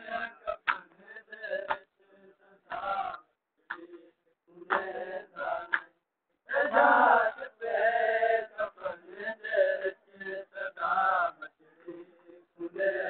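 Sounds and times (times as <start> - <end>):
men chanting a lament: 0.0 - 5.9, 6.5 - 13.0.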